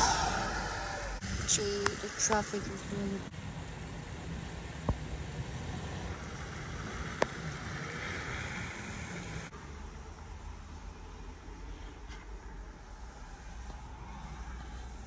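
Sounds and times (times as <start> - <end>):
van road rumble and hiss: 0.0 - 15.0.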